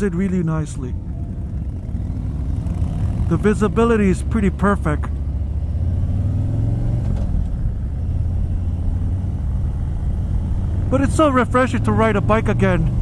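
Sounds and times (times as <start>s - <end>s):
motorcycle engine rumbling: 0.0s - 13.0s.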